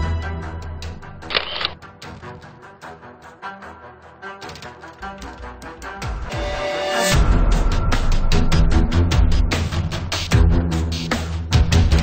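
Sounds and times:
background music: 0.0s - 12.0s
camera shutter click: 1.3s - 1.8s.

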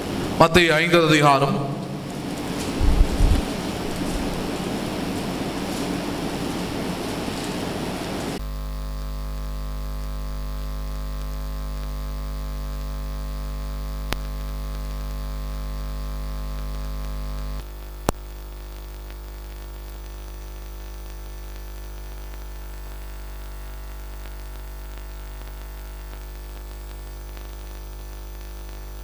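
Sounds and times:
hissing room noise: 0.0s - 8.4s
electrical mains hum: 0.0s - 29.0s
low thumps: 1.7s - 5.5s.

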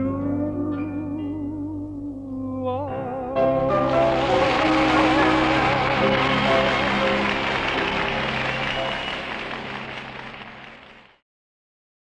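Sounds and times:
person singing with vibrato: 0.0s - 7.2s.

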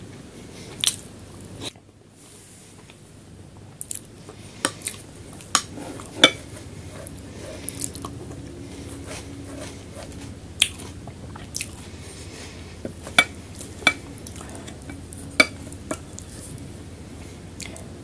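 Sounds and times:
soft chewing: 0.6s - 1.9s, 2.6s - 18.0s.

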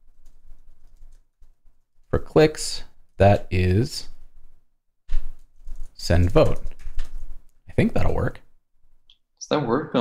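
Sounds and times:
faint keyboard typing: 0.0s - 8.4s.

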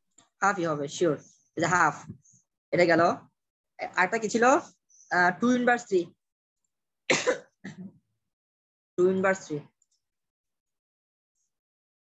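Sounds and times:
person clearing throat: 7.1s - 7.9s.

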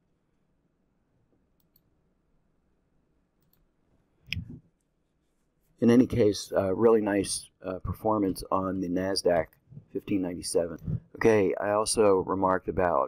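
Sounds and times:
computer mouse click: 1.6s - 1.9s, 3.4s - 3.7s.

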